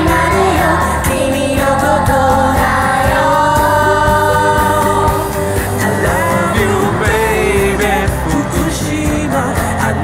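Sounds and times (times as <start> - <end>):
girls singing in chorus: 0.0 - 7.0
band backing track: 0.0 - 10.0.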